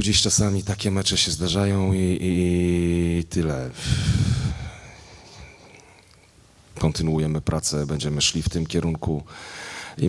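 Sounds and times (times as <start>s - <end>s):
man exhaling into microphone: 3.8s - 5.6s.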